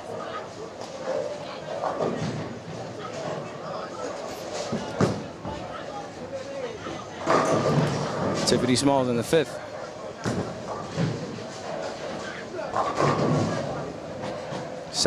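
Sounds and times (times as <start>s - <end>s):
indistinct background talk: 0.0s - 15.0s.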